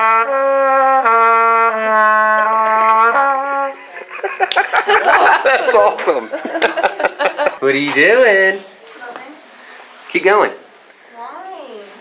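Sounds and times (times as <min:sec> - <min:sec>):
trumpet held notes: 0:00.0 - 0:03.8.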